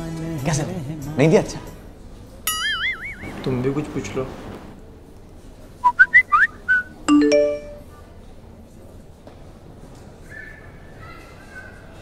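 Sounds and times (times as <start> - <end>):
short whistle notes: 5.8 - 7.0.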